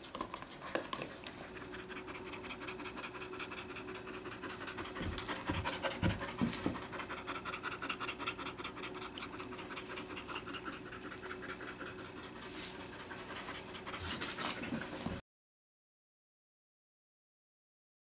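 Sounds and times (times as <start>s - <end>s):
dog panting: 0.0s - 15.2s.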